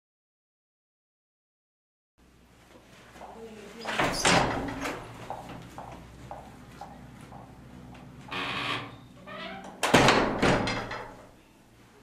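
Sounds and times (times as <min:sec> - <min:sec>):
door squeak: 0:03.8 - 0:05.0, 0:08.3 - 0:11.0
glass door banging shut: 0:03.9 - 0:05.0, 0:09.4 - 0:11.3.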